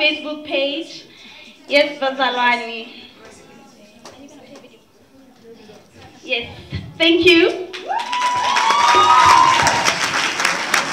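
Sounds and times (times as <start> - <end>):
audience clapping and cheering: 7.7 - 10.9
person's long high cheer: 7.8 - 10.2.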